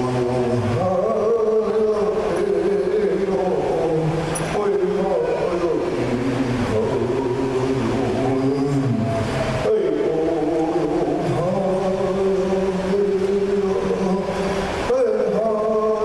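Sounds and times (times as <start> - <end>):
person singing long held notes: 0.0 - 16.0.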